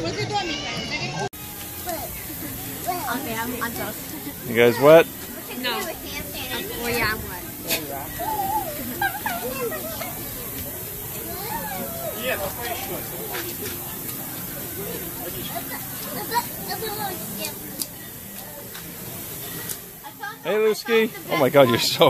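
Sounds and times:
water mist nozzles hissing: 1.5 - 22.0.

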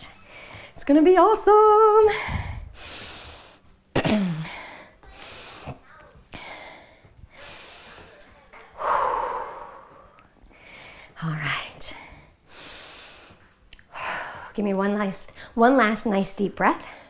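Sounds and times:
woman breathing hard: 0.0 - 0.8, 2.0 - 3.7, 4.3 - 14.6.

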